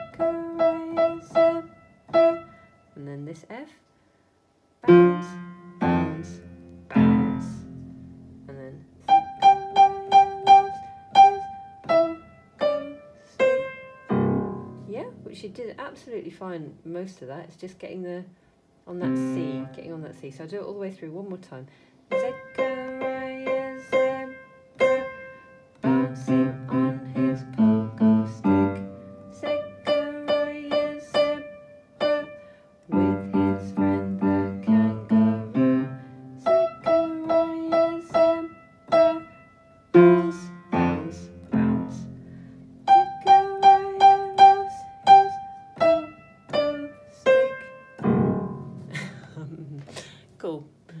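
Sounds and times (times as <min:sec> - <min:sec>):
upright piano playing: 0:00.0 - 0:02.9, 0:04.8 - 0:15.8, 0:19.0 - 0:20.1, 0:22.1 - 0:49.3.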